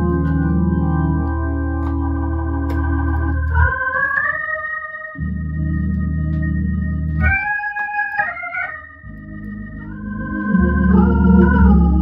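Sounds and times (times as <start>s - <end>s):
organ playing hymn chords: 0.0s - 12.0s.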